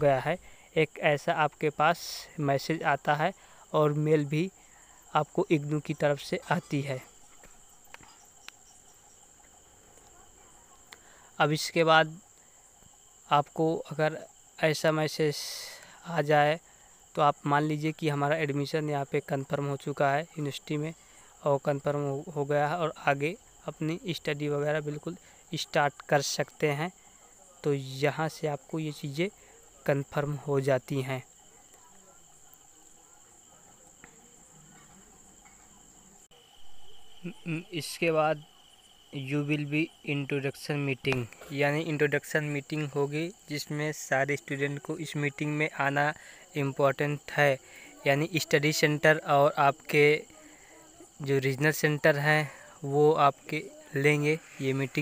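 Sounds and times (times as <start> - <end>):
steady high-pitched whine: 0.0 - 55.0
high-pitched whine: 36.4 - 38.5.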